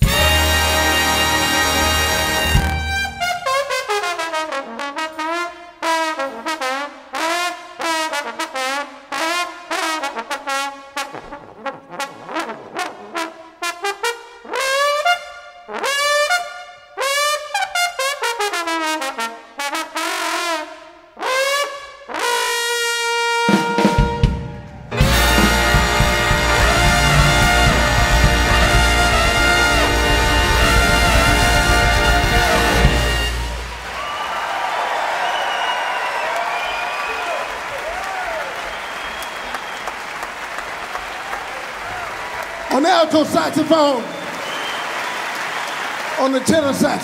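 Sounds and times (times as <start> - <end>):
solo jazz trombone: 0.0 - 33.8
big band playing: 0.0 - 47.0.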